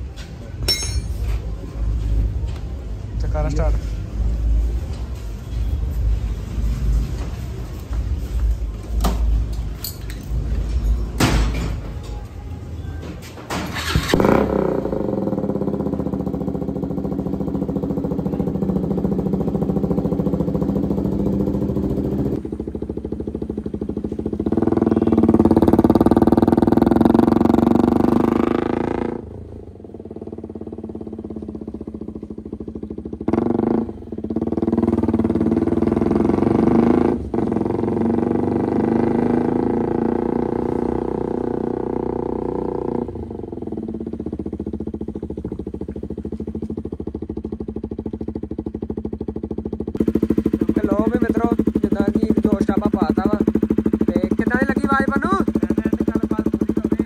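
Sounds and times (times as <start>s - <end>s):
motorcycle engine being ridden: 0.0s - 57.0s.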